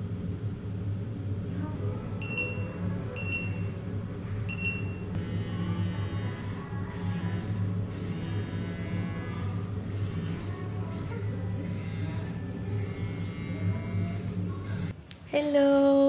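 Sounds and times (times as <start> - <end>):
massage device buzzing: 5.1 - 15.0.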